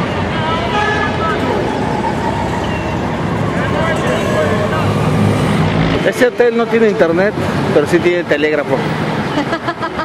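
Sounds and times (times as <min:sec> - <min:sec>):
car and bus engines rumbling: 0:00.0 - 0:10.0.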